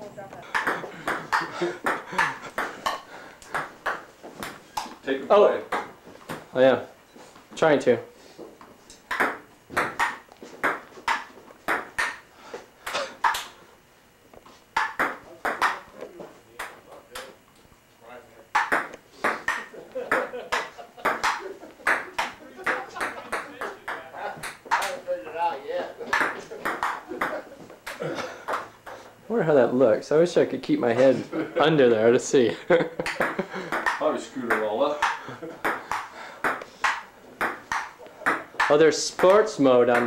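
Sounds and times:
ping-pong ball clicking: 0:00.5 - 0:05.0, 0:09.1 - 0:12.2, 0:13.2 - 0:13.5, 0:14.8 - 0:15.8, 0:18.5 - 0:25.0, 0:26.1 - 0:28.6, 0:33.0 - 0:39.4
voices: 0:19.4 - 0:28.4.

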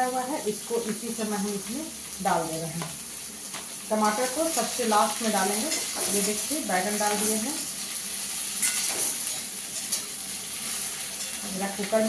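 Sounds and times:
vegetables sizzling in a pan: 0:00.0 - 0:12.0.

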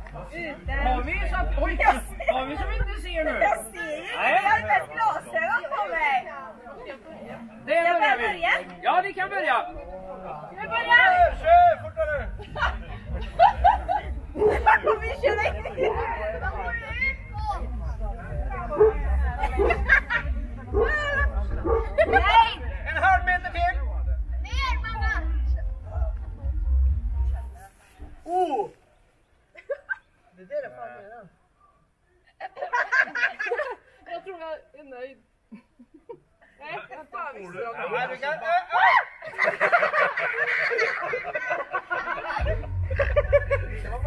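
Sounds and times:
people chattering and laughing: 0:00.0 - 0:44.0
faint voices: 0:09.6 - 0:29.5.

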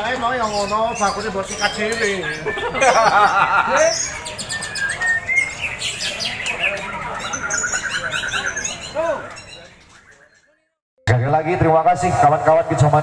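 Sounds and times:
songbirds whistling and trilling: 0:00.0 - 0:10.6
people's voices: 0:00.0 - 0:13.0.

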